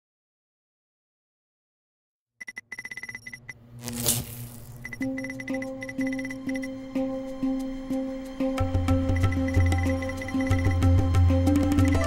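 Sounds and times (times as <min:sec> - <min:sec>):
rapid high electronic beeps: 0:02.4 - 0:03.6, 0:04.8 - 0:06.7, 0:09.1 - 0:10.8.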